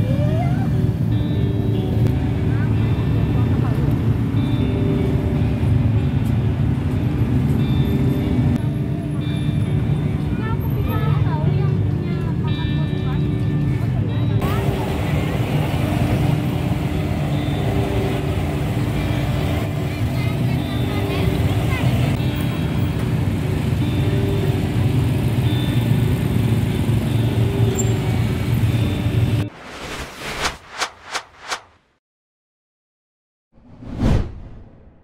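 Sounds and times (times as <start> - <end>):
motorbike engines in traffic: 0.0 - 29.5
people talking: 2.4 - 4.0, 10.2 - 15.4, 19.9 - 22.2.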